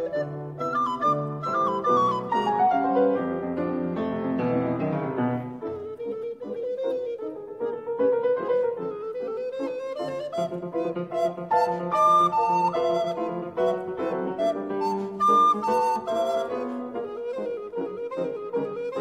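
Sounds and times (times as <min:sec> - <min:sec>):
recorder and piano duet: 0:00.0 - 0:19.0.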